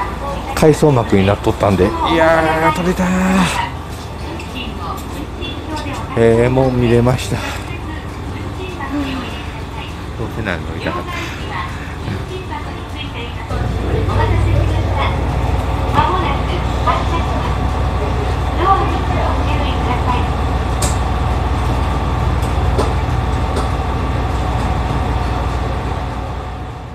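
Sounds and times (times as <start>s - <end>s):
faint voices: 0.0s - 21.5s
low rumble inside train car: 0.0s - 26.9s.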